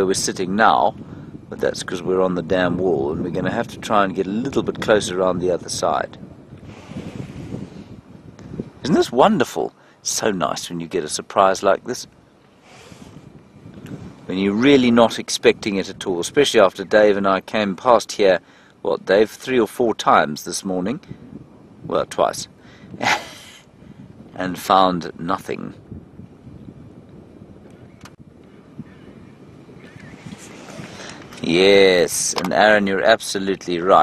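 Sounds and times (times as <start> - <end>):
wind noise on microphone: 0.0 - 34.0.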